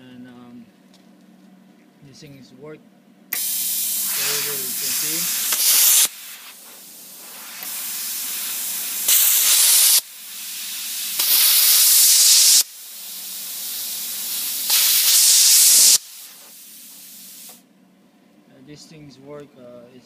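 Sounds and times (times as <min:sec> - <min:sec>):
plasma cutter hissing: 0:03.4 - 0:17.6.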